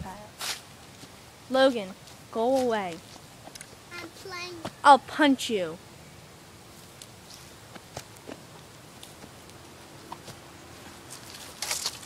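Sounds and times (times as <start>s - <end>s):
footsteps in dry leaves: 6.7s - 12.0s.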